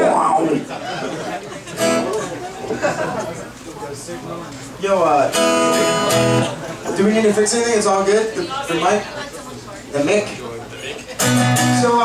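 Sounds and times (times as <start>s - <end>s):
voices and room chatter: 0.0s - 12.0s
acoustic guitar strumming: 1.8s - 2.2s, 5.1s - 6.6s, 11.2s - 12.0s.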